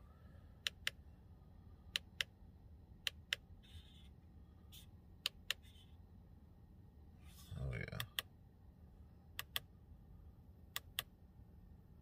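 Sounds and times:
control buttons clicking: 9.4 - 9.7.

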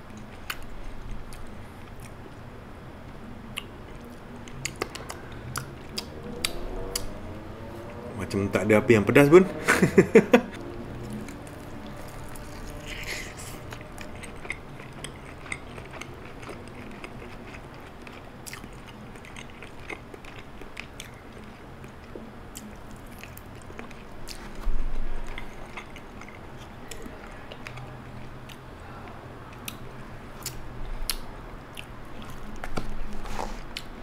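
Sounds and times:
chewing crispy fried chicken: 3.0 - 7.2, 10.6 - 34.0.

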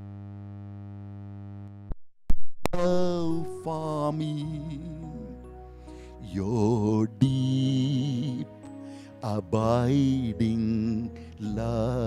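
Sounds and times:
man singing hymn with vibrato: 2.7 - 12.0
electronic keyboard chord: 3.4 - 12.0.

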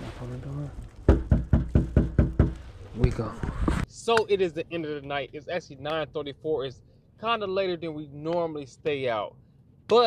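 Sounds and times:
knuckles knocking on door: 1.1 - 2.6.

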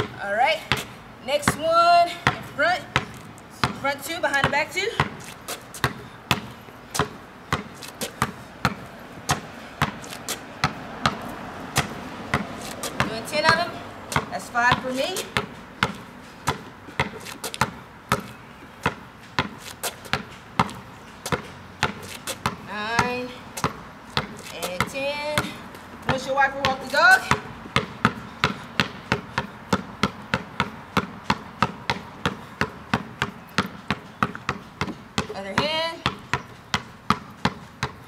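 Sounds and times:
basketball bouncing on concrete: 0.0 - 38.0.

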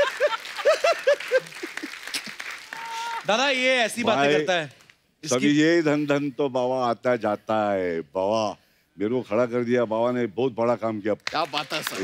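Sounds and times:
applause: 0.0 - 4.0, 11.3 - 12.0.

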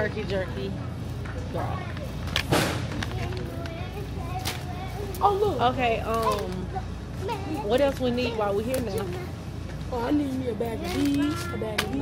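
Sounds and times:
voices: 0.0 - 12.0
plastic bag rustle: 1.8 - 9.3, 10.2 - 12.0.

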